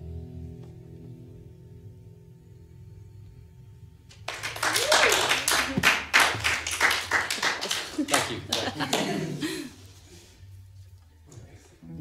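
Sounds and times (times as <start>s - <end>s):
people clapping: 4.1s - 9.7s.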